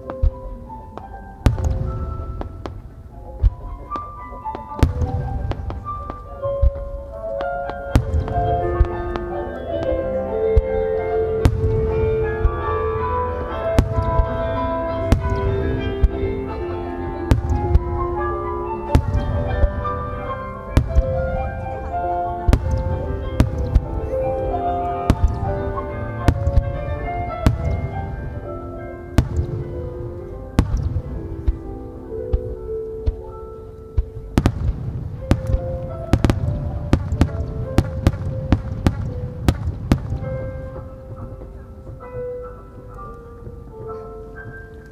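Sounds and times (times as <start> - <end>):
fireworks bursting: 0.0 - 42.2
music: 0.0 - 44.9.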